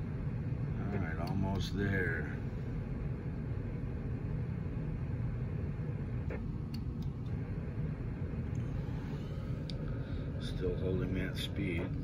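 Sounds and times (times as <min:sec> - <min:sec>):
low room background rumble: 0:00.0 - 0:12.0.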